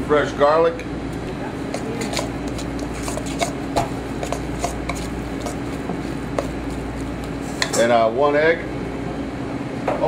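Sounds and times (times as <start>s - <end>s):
metal spoon scraping steel bowl: 1.7s - 3.6s, 4.2s - 7.8s.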